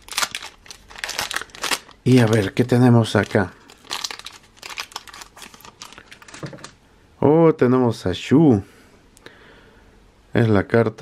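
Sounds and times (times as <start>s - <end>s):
foil pack crinkling: 0.0s - 6.8s.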